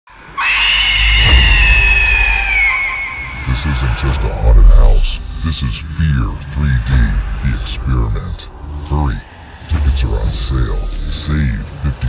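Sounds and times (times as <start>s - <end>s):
long high-pitched scream: 0.2s - 4.0s
deep low rumble: 1.2s - 12.0s.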